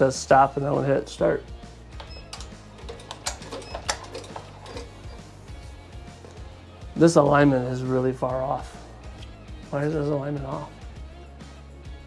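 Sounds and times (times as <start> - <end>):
background music: 0.0 - 12.0
embroidery machine clicking: 2.0 - 5.3.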